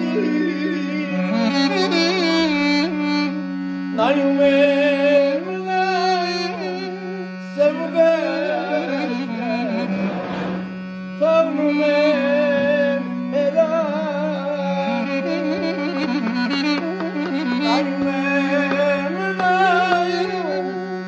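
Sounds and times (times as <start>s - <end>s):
duduk melody: 0.0s - 21.0s
low drone note: 6.7s - 13.7s.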